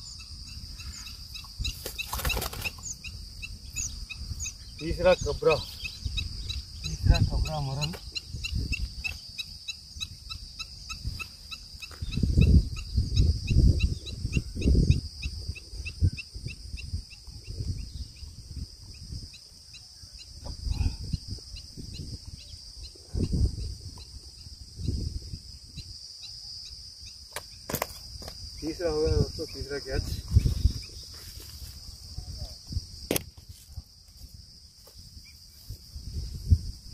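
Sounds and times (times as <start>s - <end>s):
insects chirping: 0.0s - 36.9s.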